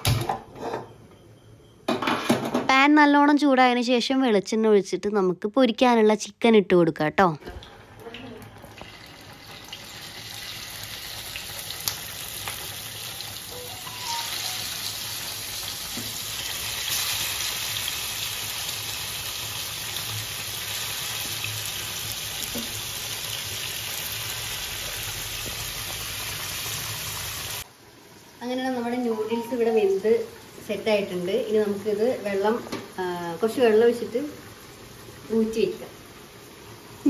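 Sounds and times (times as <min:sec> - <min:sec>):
chicken sizzling in hot oil: 0:07.8 - 0:37.0.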